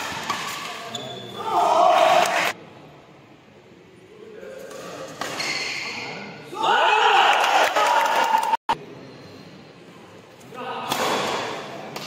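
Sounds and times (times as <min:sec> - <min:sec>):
shoe squeaks on court: 0:00.8 - 0:01.4, 0:05.3 - 0:06.0.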